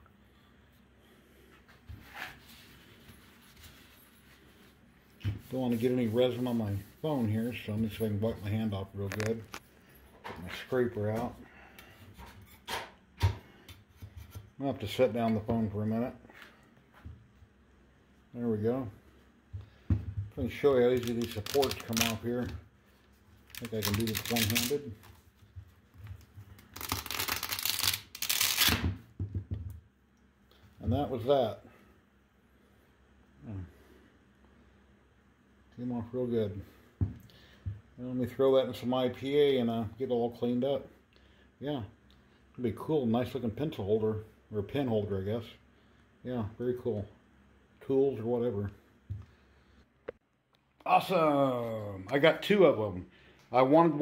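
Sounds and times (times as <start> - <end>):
resin supports crackling and snapping: 20.6 - 22.6, 23.4 - 25.1, 26.5 - 28.8.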